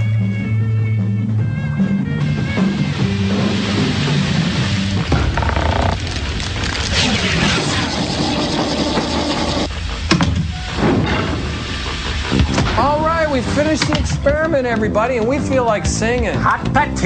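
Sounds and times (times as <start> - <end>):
heavy sliding doors opening: 5.1 - 6.2.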